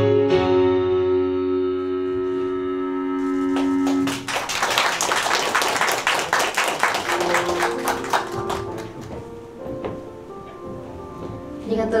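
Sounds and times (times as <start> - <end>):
small crowd clapping: 3.2 - 9.4
faint background music: 6.8 - 12.0.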